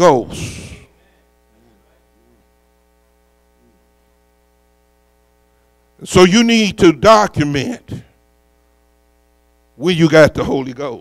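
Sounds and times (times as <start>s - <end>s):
faint mains hum: 0.0s - 11.0s
soft voice: 1.0s - 2.6s, 3.5s - 4.0s.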